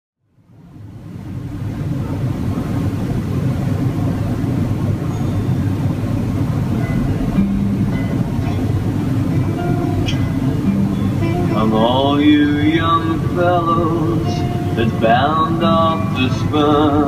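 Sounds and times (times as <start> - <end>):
low rumble: 0.4 - 17.0
faint low held note: 5.0 - 16.3.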